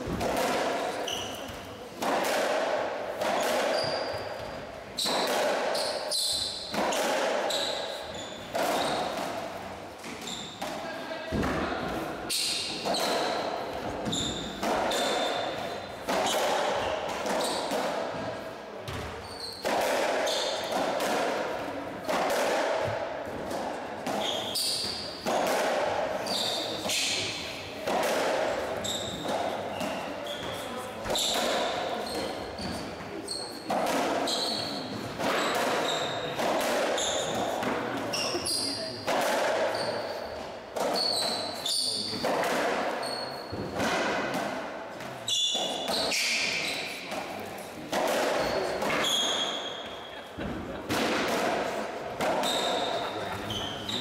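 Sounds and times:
ball striking rackets and walls: 0:00.0 - 0:54.0
shoes squeaking on wooden floor: 0:07.5 - 0:09.2, 0:10.1 - 0:10.6, 0:14.0 - 0:15.8, 0:19.2 - 0:19.6, 0:28.8 - 0:31.3, 0:41.0 - 0:42.2, 0:43.0 - 0:43.8, 0:52.3 - 0:54.0.

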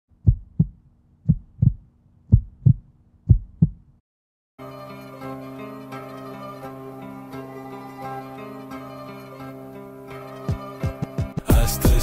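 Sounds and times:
heartbeat thumps: 0:00.1 - 0:04.0.

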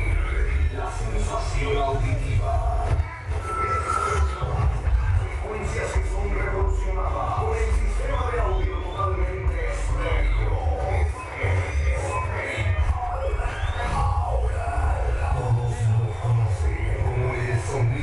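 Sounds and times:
crowd voices: 0:00.0 - 0:18.0.

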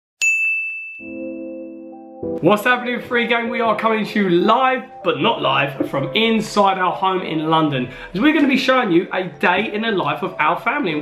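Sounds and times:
bright bell ding: 0:00.2 - 0:01.4.

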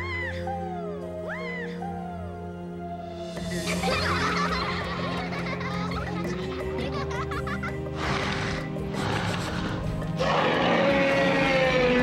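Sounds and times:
background music: 0:00.0 - 0:12.0
dinosaur roaring: 0:08.0 - 0:12.0.

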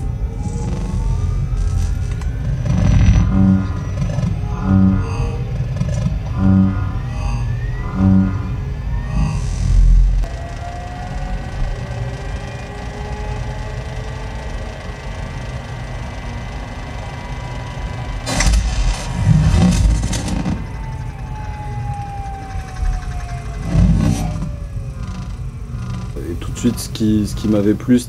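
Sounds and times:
sustained gliding tones: 0:00.0 - 0:28.0.

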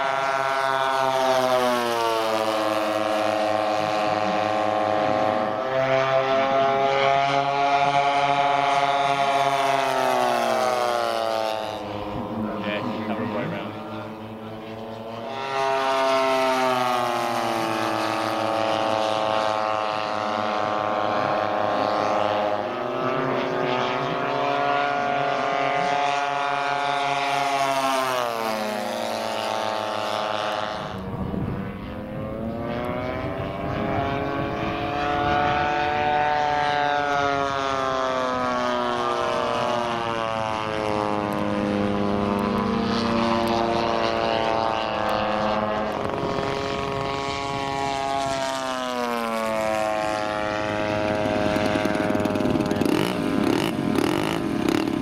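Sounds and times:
model aircraft engines flying by: 0:00.0 - 0:55.0.

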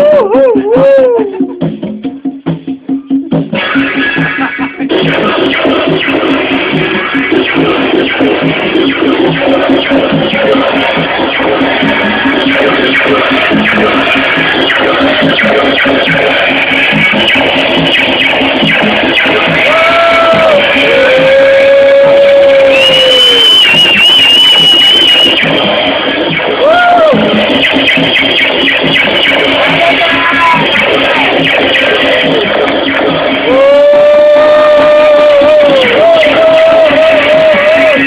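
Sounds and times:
distorted electronic noise music: 0:00.0 - 0:38.0.

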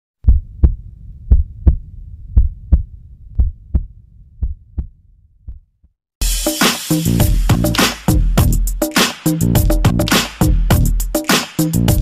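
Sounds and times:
heartbeat thumps: 0:00.2 - 0:05.7.

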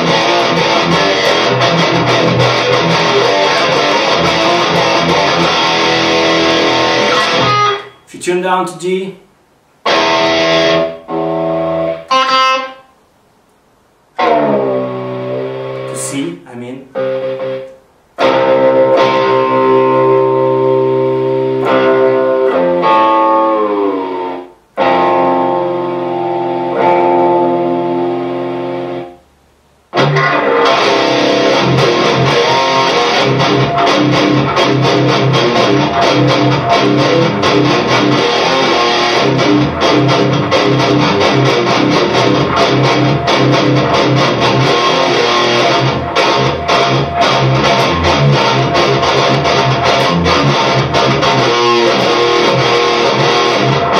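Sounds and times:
distorted electric guitar: 0:00.0 - 0:13.1, 0:14.0 - 0:53.9.

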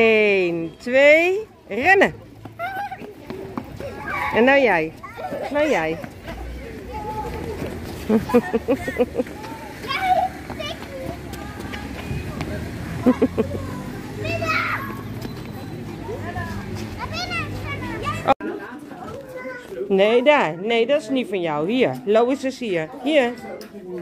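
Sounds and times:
children playing in background: 0:02.2 - 0:21.2, 0:22.7 - 0:24.0
toddler calling and squealing: 0:14.2 - 0:15.1.

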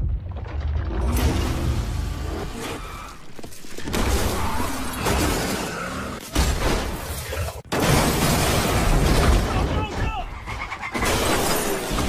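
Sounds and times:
crashing and shattering: 0:03.2 - 0:12.0.

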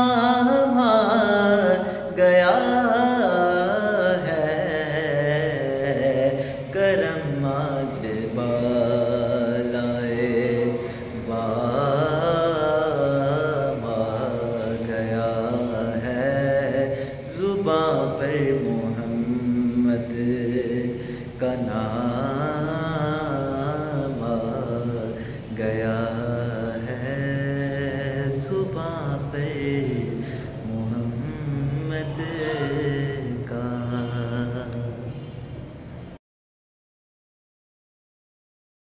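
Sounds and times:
man singing unaccompanied: 0:00.0 - 0:35.4.

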